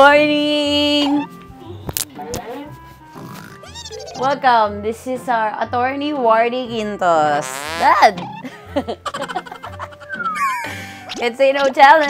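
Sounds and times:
comedic sound-effect music: 0:02.0 - 0:04.4, 0:07.4 - 0:11.2.

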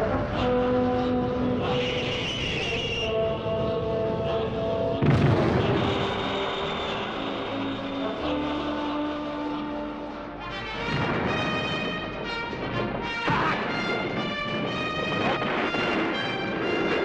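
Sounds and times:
orchestral score music: 0:00.0 - 0:17.0
sudden boom: 0:05.0 - 0:08.4.

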